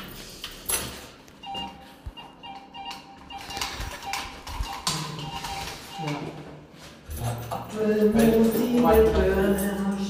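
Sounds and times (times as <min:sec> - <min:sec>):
electronic beeping tune: 0:01.4 - 0:06.4.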